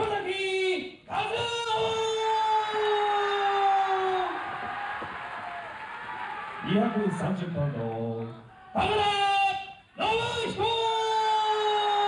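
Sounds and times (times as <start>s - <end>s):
arena crowd noise: 1.1s - 12.0s.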